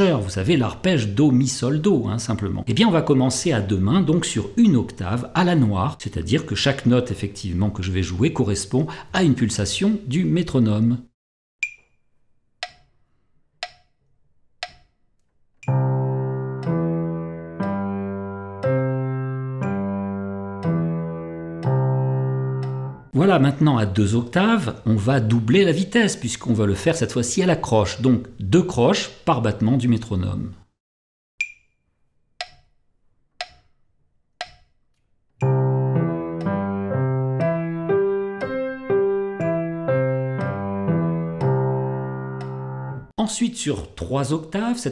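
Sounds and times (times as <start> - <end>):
metronome clicks: 11.6 - 12.0, 12.6 - 13.0, 13.6 - 14.0, 14.6 - 15.0, 15.6 - 16.0, 16.6 - 17.8, 22.6 - 22.9, 31.4 - 31.8, 32.4 - 32.8, 33.4 - 33.8, 34.4 - 34.8, 35.4 - 36.8, 38.0 - 38.8, 41.4 - 41.8, 42.4 - 42.7
piano notes: 15.6 - 23.4, 35.4 - 43.1.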